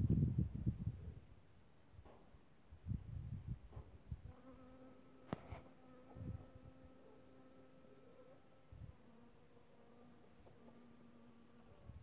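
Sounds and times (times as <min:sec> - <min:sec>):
honey bee buzzing: 0:04.2 - 0:12.0.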